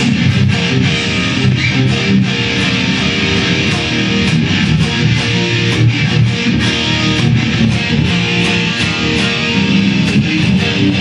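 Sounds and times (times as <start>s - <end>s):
electric guitar solo: 0.0s - 11.0s.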